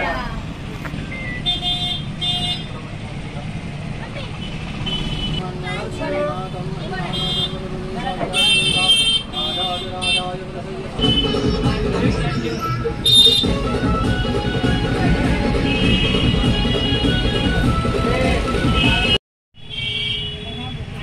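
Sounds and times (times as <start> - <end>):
murmur of crowd chatter: 0.0 - 1.2, 5.3 - 19.2.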